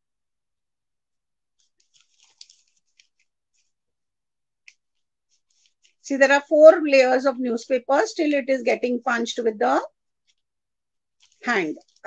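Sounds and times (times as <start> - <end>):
newspaper crinkling and crackling: 1.5 - 3.9, 4.6 - 6.5, 10.1 - 12.0.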